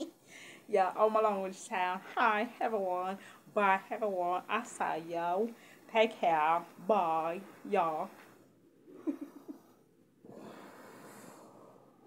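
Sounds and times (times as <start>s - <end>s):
person exhaling breathily: 10.3s - 12.0s.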